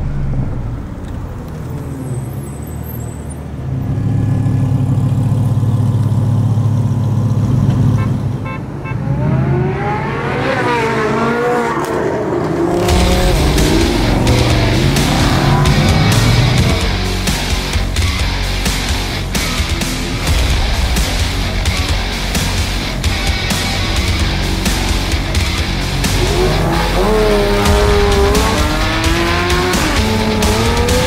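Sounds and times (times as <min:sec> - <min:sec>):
engine crackles: 0:00.0 - 0:08.6, 0:11.8 - 0:31.0
sports car engine revving: 0:08.9 - 0:31.0.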